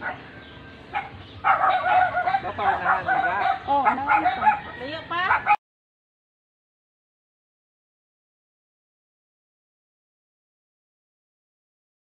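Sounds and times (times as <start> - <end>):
dog yipping and whining: 0.9 - 5.6.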